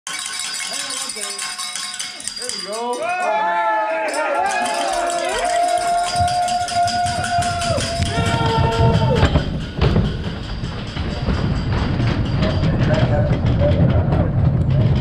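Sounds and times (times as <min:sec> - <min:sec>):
bobsleigh runners rumbling on ice: 0:04.4 - 0:15.0.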